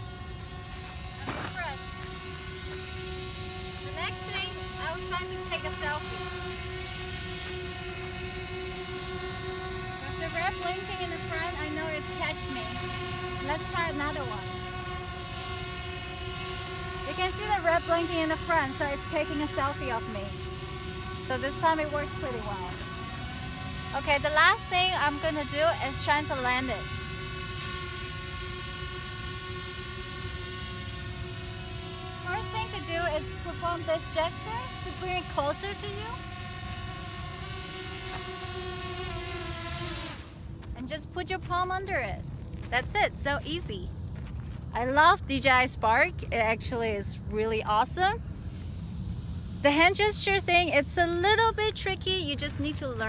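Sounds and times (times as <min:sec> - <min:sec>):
drone propellers whining: 0:00.0 - 0:44.0, 0:44.7 - 0:53.0
woman's voice: 0:01.2 - 0:01.8, 0:03.9 - 0:06.1, 0:10.0 - 0:12.8, 0:13.4 - 0:14.5, 0:17.1 - 0:20.4, 0:21.3 - 0:22.8, 0:24.0 - 0:26.8, 0:32.3 - 0:36.2, 0:40.8 - 0:43.9, 0:44.7 - 0:48.2, 0:49.6 - 0:53.0.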